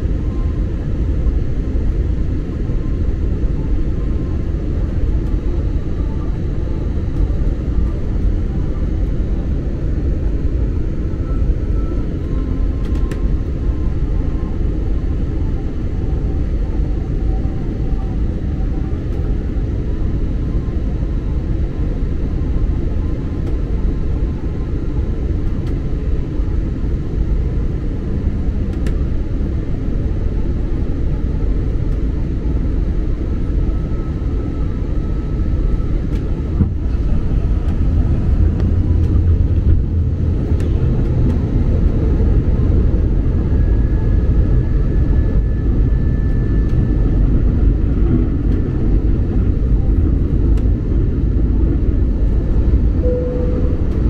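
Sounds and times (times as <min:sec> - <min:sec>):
jet engines rumbling: 0:00.0 - 0:54.0.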